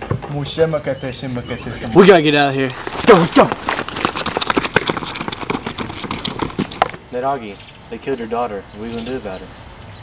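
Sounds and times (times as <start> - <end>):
footsteps running on concrete: 2.8 - 7.0.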